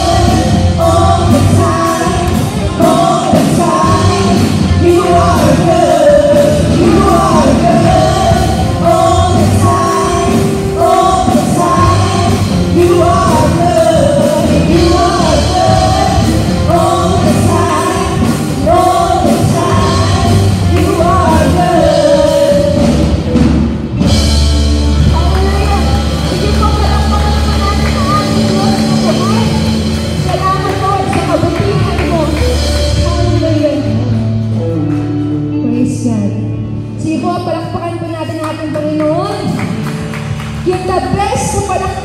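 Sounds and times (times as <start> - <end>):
backing vocals: 0.0 - 23.0
woman singing lead: 0.0 - 23.3
electric guitar: 0.0 - 42.0
keyboard: 0.0 - 42.0.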